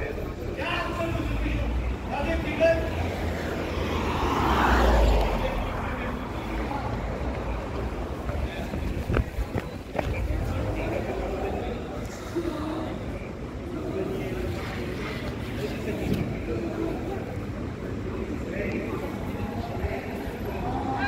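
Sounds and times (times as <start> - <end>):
background voices: 0.0 - 21.0
low traffic rumble: 0.0 - 21.0
car passing: 0.9 - 8.7.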